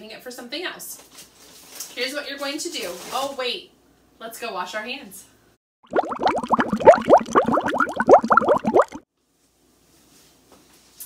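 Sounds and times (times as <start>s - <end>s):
cartoon bubbling plops: 5.8s - 9.0s.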